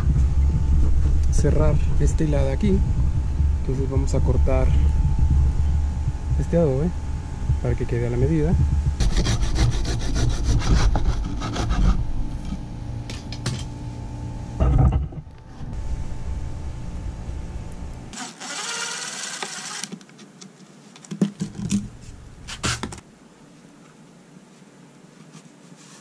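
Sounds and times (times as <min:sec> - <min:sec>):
bow saw rasping through brick: 0:09.0 - 0:12.0.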